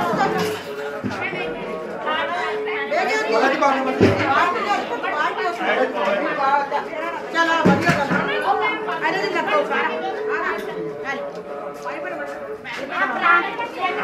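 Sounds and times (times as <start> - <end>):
women chatting: 0.0 - 14.0.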